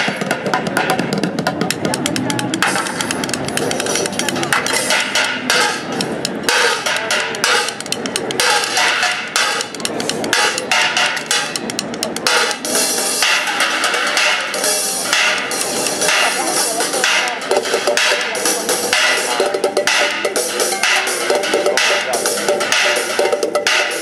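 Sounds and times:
drumsticks on pans and buckets: 0.0 - 24.0.

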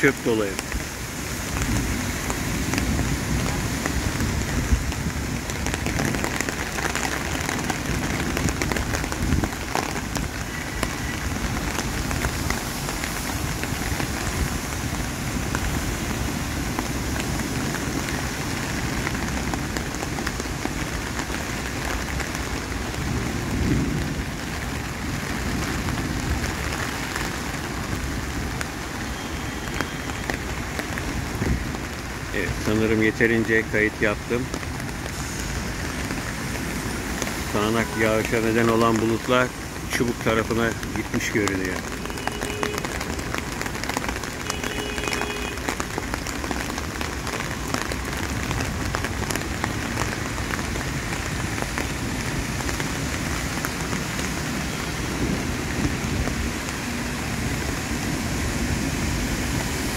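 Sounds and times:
heavy rain falling: 0.0 - 59.9.

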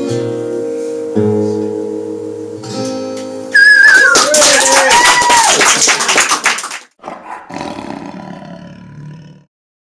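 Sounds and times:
audience clapping and whooping: 3.6 - 7.0.

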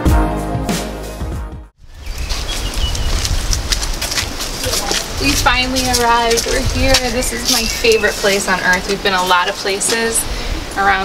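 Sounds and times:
wind rumbling on microphone: 1.8 - 11.0
footsteps on stone paving: 2.1 - 10.2.

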